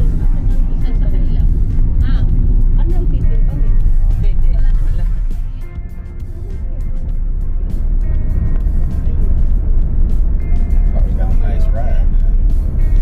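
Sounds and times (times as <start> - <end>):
car road rumble: 0.0 - 13.0
music: 0.0 - 13.0.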